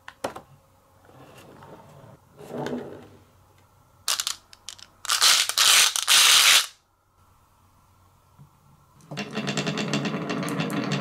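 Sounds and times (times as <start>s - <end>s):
marbles rattling in plastic cup: 4.1s - 6.2s.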